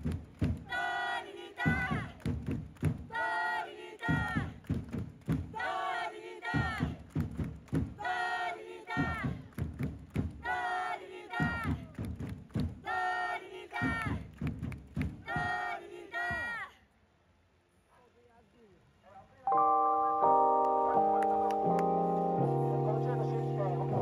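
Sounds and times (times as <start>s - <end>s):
drum beats: 0.0s - 13.1s, 13.8s - 16.6s
crowd chanting: 0.6s - 2.2s, 3.1s - 4.6s, 5.5s - 7.0s, 8.0s - 9.5s, 10.4s - 11.9s, 12.8s - 14.2s, 15.2s - 16.7s.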